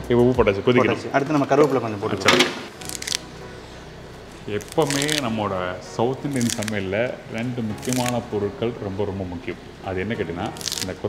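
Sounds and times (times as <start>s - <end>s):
man talking: 0.0s - 2.6s, 4.4s - 11.0s.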